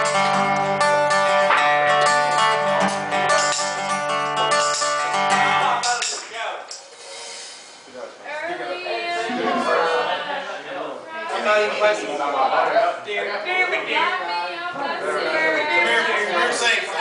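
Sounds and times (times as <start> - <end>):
acoustic guitar chords: 0.0 - 6.2
voices in a room: 5.2 - 17.0.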